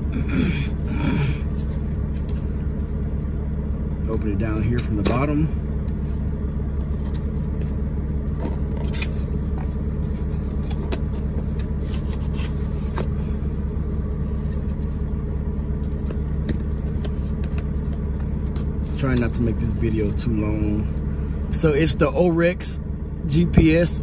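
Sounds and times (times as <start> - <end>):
diesel engine idling: 0.0 - 24.0.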